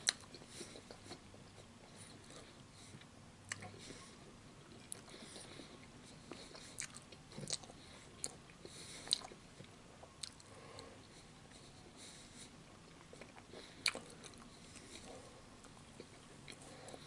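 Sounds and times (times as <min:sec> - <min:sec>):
close chewing: 0:00.0 - 0:10.9, 0:12.8 - 0:17.0.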